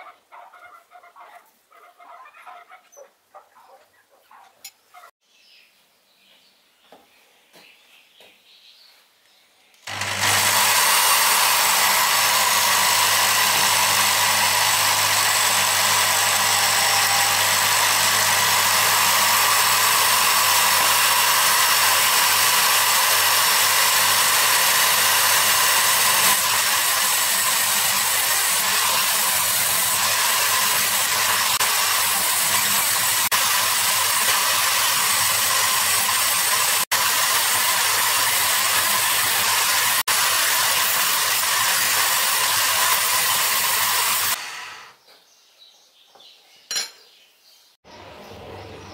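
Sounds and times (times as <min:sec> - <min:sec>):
electric drill switching on: 0:09.9 - 0:45.0.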